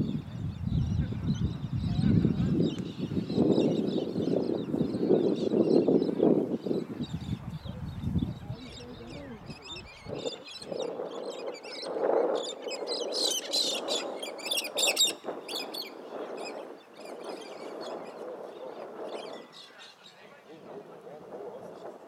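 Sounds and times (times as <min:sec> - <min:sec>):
birds chirping and calling: 0:00.0 - 0:21.9
murmur of distant voices: 0:04.6 - 0:11.1, 0:18.4 - 0:22.0.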